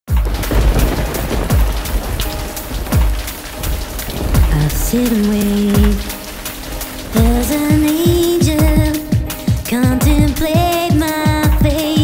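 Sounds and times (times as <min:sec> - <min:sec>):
thunder rumbling boom: 0:00.1 - 0:09.6
steady rain: 0:00.1 - 0:12.0.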